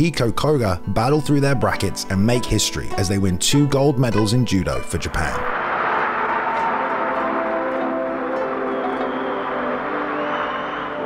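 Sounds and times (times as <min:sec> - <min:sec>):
even rushing noise: 0:05.5 - 0:11.0
sustained ringing music tones: 0:05.5 - 0:11.0.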